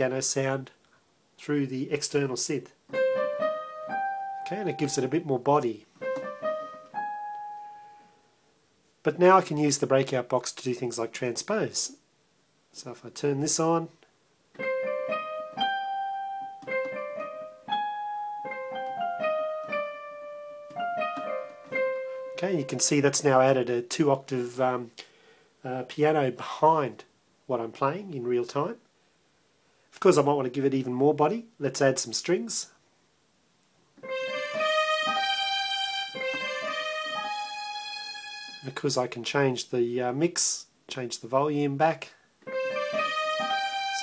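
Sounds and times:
slow piano melody: 0:02.9 - 0:05.2, 0:06.0 - 0:08.3, 0:14.6 - 0:22.9, 0:34.0 - 0:38.7, 0:42.5 - 0:44.0
synth strings: 0:34.0 - 0:38.8, 0:42.5 - 0:44.0.

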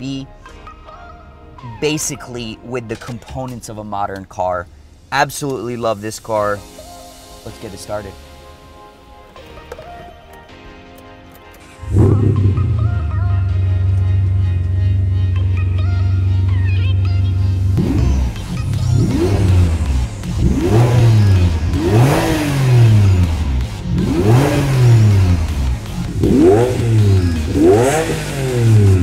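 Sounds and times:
car engine starting and idling: 0:11.6 - 0:29.0
car engine revving: 0:11.8 - 0:29.0.

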